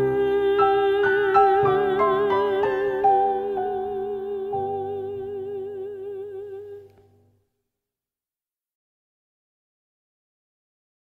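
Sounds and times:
classical voice singing: 0.0 - 7.2.

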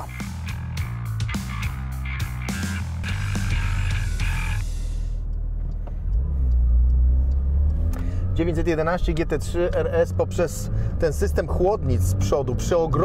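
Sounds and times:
background music with a beat: 0.0 - 8.0
car engine rumble from inside: 3.0 - 13.0.

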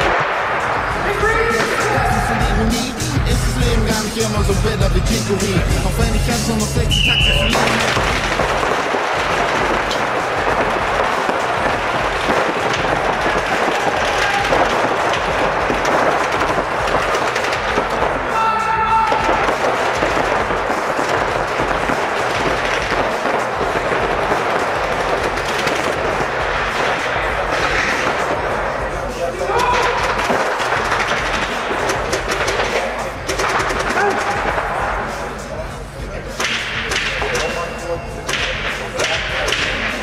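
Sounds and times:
paintball markers firing: 6.9 - 18.4, 19.1 - 28.7, 29.7 - 34.8.

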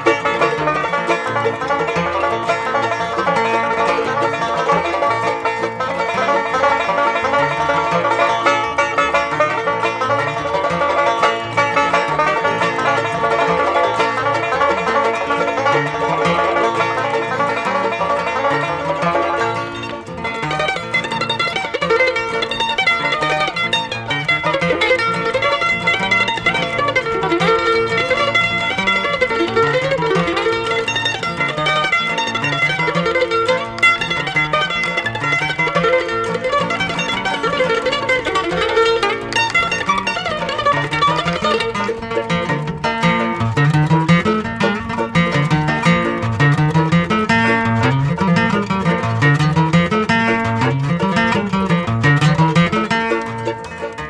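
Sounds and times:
bluegrass band playing: 0.0 - 54.0
upright bass: 0.0 - 54.0.

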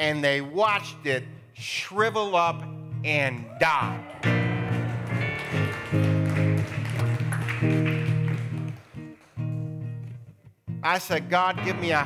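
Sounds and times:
band playing slow held chords: 3.9 - 10.0, 11.2 - 12.0.

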